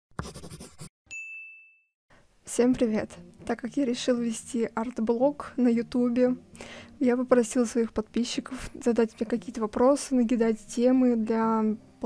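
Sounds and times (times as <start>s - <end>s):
bright chime ding: 1.1s - 1.9s.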